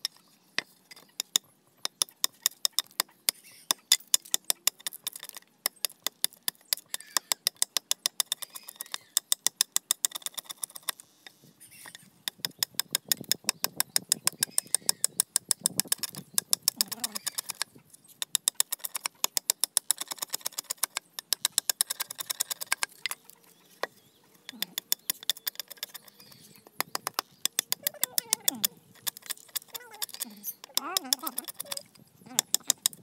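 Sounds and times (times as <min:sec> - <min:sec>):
knife scraping bamboo: 0:14.3 - 0:33.0.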